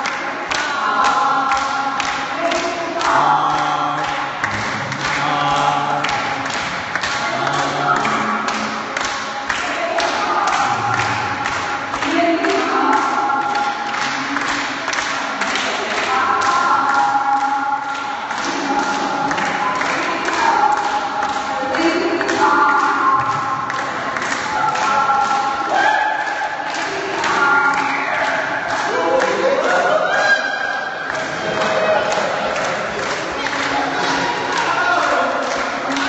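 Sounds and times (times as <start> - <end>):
group of voices singing: 0.0 - 36.0.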